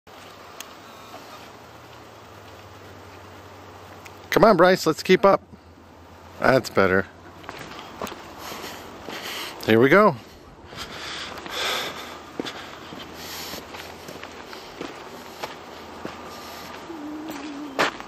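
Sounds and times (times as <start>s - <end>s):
footsteps on dirt trail: 7.2s - 18.0s.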